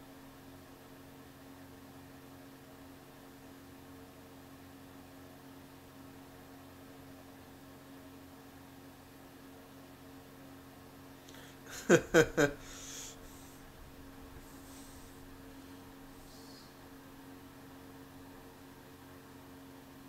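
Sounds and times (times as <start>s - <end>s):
low electrical hum: 0.0s - 20.0s
steady hiss: 11.4s - 17.6s.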